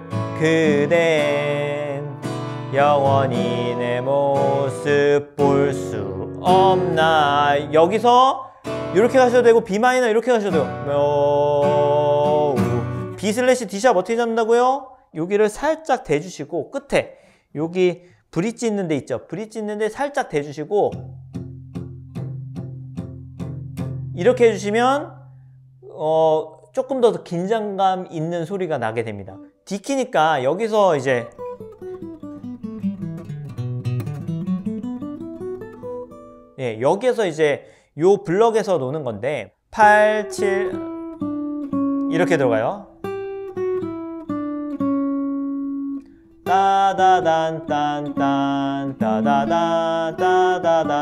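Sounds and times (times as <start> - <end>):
person singing: 0.0 - 9.8, 10.4 - 13.4, 39.8 - 40.9, 46.4 - 51.0
palm-muted acoustic guitar plucks: 0.0 - 13.4, 20.9 - 25.8, 31.2 - 36.6, 39.8 - 51.0.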